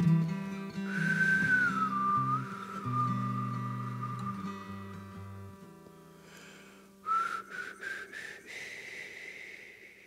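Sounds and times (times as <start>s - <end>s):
breathy whistle notes: 0.8s - 5.4s, 6.2s - 10.0s.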